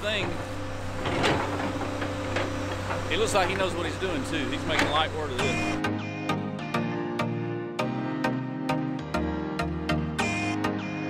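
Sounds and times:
excavator diesel engine running: 0:00.0 - 0:05.8.

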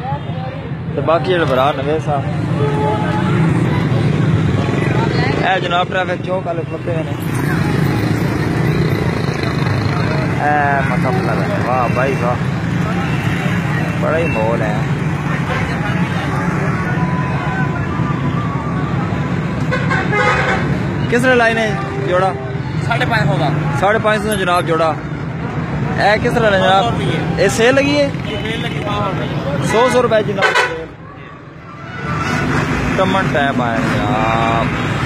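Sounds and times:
traffic engine rumble: 0:00.0 - 0:35.0.

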